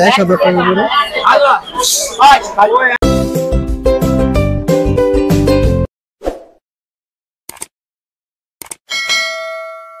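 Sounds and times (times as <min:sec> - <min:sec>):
notification bell ding: 0:08.9 - 0:10.0.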